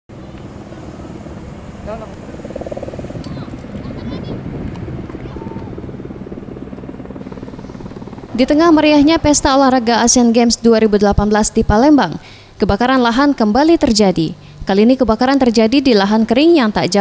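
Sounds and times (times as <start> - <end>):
helicopter rotor beating: 0.1 - 17.0.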